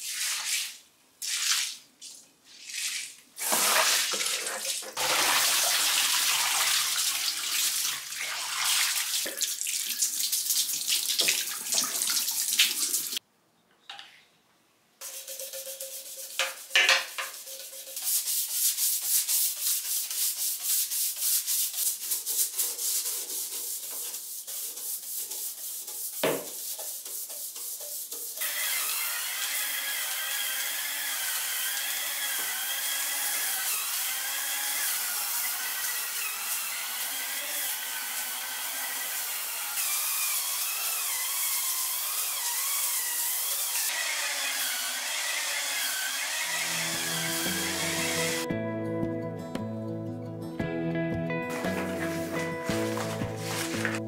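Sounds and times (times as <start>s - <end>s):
hand brush scrubbing a sink: 0.0s - 13.2s, 15.0s - 28.6s, 51.5s - 54.0s
knock: 26.2s - 26.5s.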